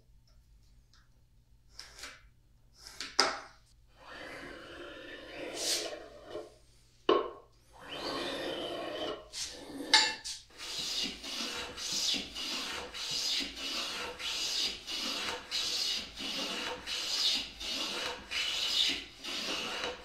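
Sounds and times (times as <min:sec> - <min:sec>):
hand plane shaving wood: 0:04.1 - 0:06.5, 0:10.5 - 0:20.0.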